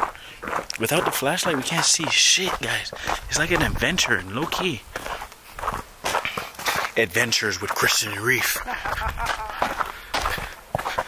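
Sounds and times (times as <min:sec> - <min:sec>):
footsteps on snow: 0:00.0 - 0:11.0.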